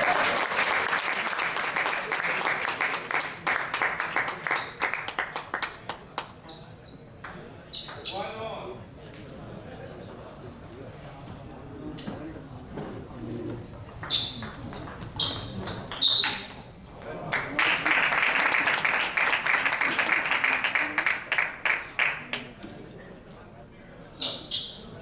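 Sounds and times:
spectators applauding: 0.0 - 6.2, 17.3 - 22.5.

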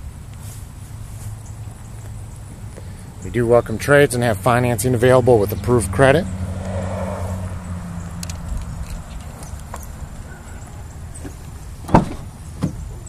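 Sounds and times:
car door latch click: 11.2 - 12.9.

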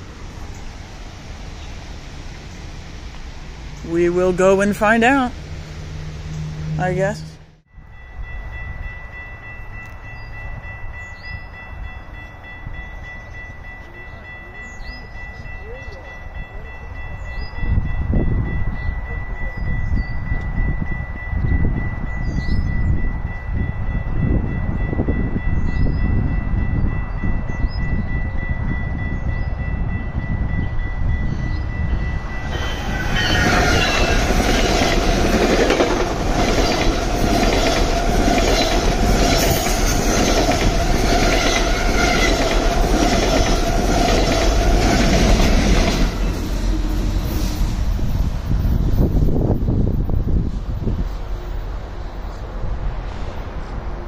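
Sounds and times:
passenger train passing: 0.0 - 54.0.

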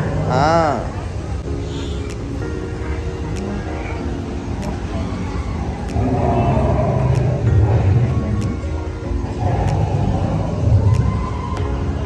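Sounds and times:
sustained chord music: 0.0 - 12.0.

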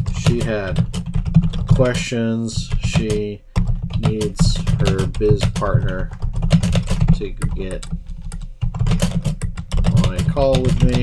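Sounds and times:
typing on computer keyboard: 0.0 - 2.0, 2.6 - 11.0.

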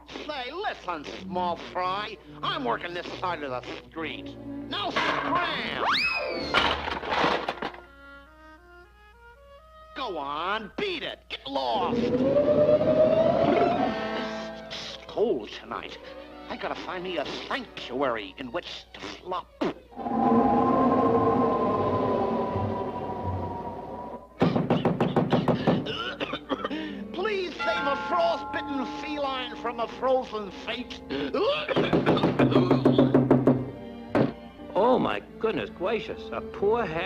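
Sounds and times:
junk crashing: 4.8 - 5.7, 6.5 - 7.9
soft orchestral notes rising: 11.8 - 15.4, 19.9 - 24.4, 27.3 - 31.4
staccato orchestral strokes: 12.9 - 15.2.

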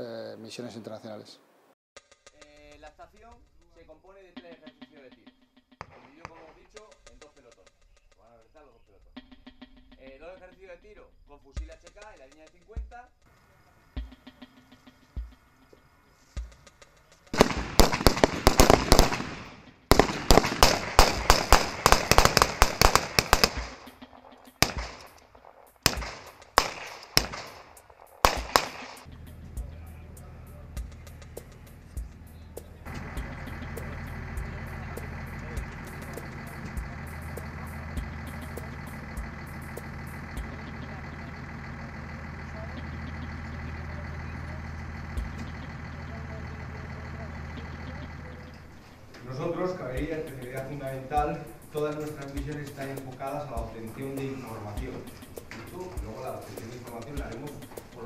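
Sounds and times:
rifle shots: 5.8 - 7.3, 17.3 - 29.1
low engine drone: 17.4 - 58.0.

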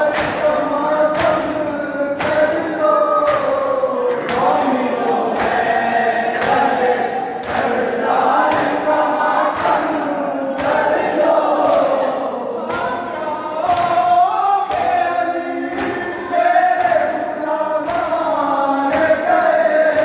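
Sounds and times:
hands slapping chests: 0.0 - 1.6, 2.2 - 4.7, 5.3 - 5.8, 6.4 - 10.0, 10.6 - 13.0, 13.6 - 15.1, 15.7 - 16.2, 17.8 - 18.2, 18.9 - 19.3
crowd of men chanting: 0.0 - 20.0.

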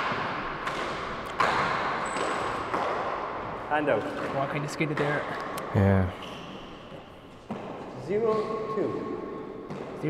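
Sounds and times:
ball bouncing on court floor: 0.0 - 5.4, 7.4 - 10.0.

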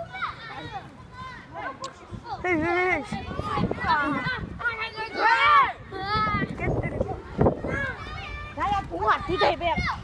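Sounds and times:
children shouting: 0.0 - 1.8, 3.0 - 10.0.

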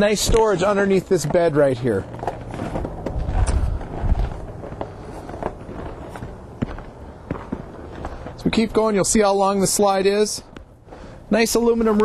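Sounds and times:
footsteps walking: 0.0 - 11.2
low rumble: 2.4 - 8.0.

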